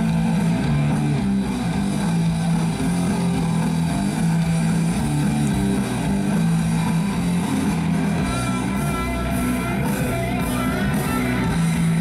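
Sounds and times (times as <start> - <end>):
live punk rock band: 0.0 - 12.0.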